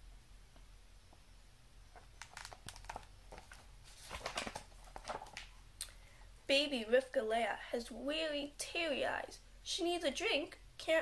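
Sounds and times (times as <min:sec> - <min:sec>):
book pages turning: 0:01.9 - 0:05.6.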